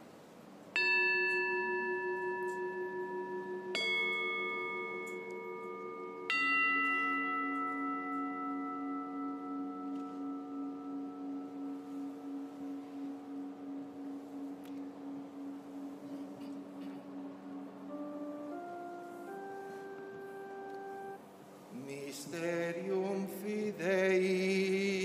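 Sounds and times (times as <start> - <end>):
altar bells ringing: 0.7 - 25.0.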